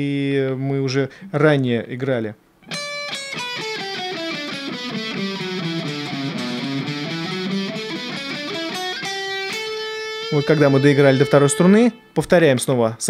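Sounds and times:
electric guitar scale run: 0:02.7 - 0:12.0.

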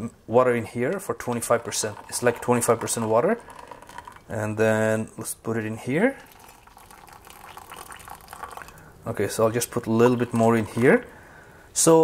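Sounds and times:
hot water pouring into a mug: 0:01.2 - 0:04.4, 0:06.1 - 0:11.1.

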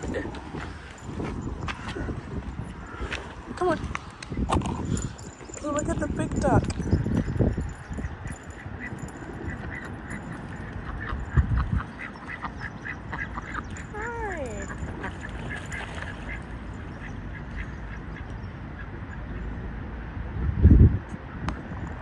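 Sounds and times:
wind rumble on microphone: 0:00.0 - 0:22.0
ducks quacking: 0:08.2 - 0:19.2.

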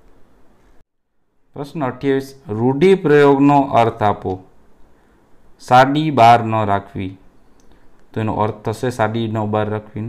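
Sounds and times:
man speaking: 0:01.5 - 0:04.5, 0:05.6 - 0:07.3, 0:08.1 - 0:10.0.

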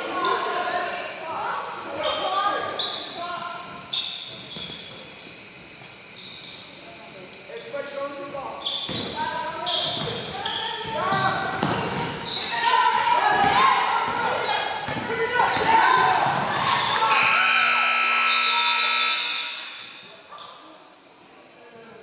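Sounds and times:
voices: 0:00.0 - 0:20.8
scoreboard horn blast: 0:17.0 - 0:19.7.

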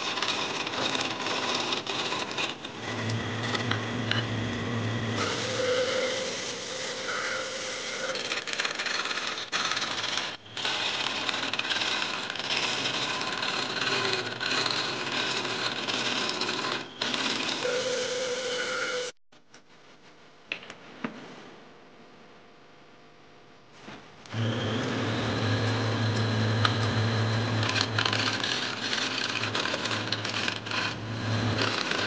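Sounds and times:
lathe tool cutting wood: 0:00.0 - 0:04.2, 0:05.2 - 0:19.2, 0:24.3 - 0:32.0.

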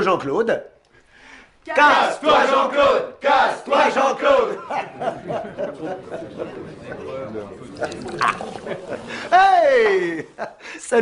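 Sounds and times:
group of people chattering: 0:03.7 - 0:09.3.

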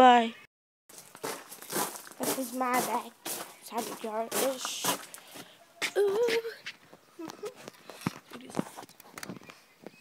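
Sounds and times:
footsteps: 0:00.9 - 0:09.6.

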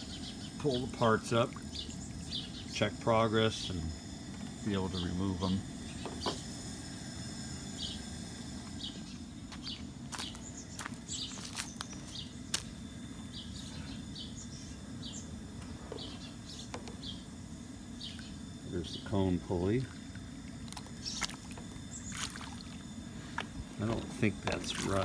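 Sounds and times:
insects chirping: 0:00.0 - 0:25.0.

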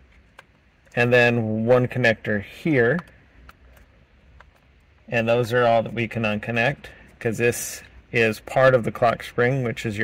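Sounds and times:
faint plastic clicks: 0:02.9 - 0:05.1.

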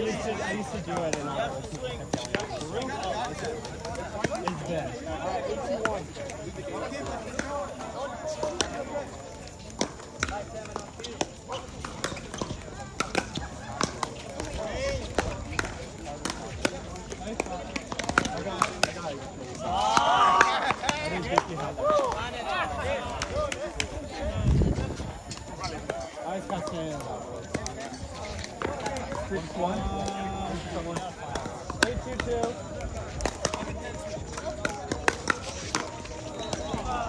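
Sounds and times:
background chatter: 0:00.0 - 0:37.0
paddles hitting plastic ball: 0:07.0 - 0:22.2, 0:25.2 - 0:37.0.

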